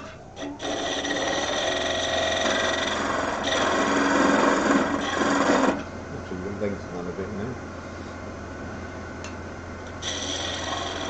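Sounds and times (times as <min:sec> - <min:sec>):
tool scraping spinning wood: 0:00.0 - 0:05.9, 0:10.0 - 0:11.0
lathe motor hum: 0:00.0 - 0:08.0, 0:09.8 - 0:11.0.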